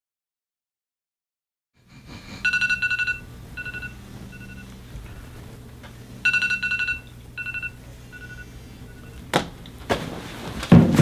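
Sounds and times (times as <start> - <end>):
smartphone alert beeps: 2.4 - 4.7, 6.2 - 9.2.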